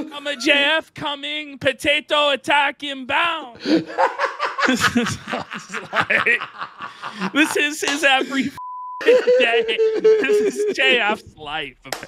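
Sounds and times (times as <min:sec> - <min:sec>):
men laughing hard: 0:03.6 - 0:11.2.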